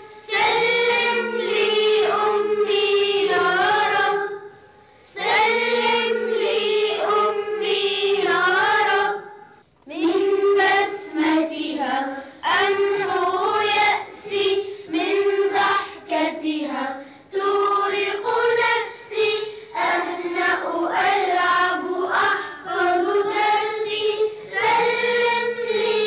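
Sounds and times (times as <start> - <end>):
children's choir singing: 0.0 - 26.0.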